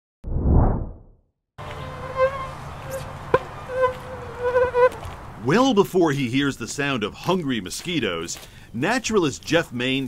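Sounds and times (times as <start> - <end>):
low whoosh: 0.2 - 1.1
mosquitoes buzzing: 1.6 - 5.2.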